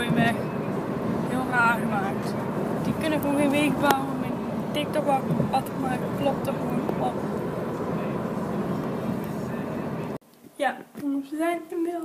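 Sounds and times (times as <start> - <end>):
road and tyre rumble in car: 0.0 - 10.2.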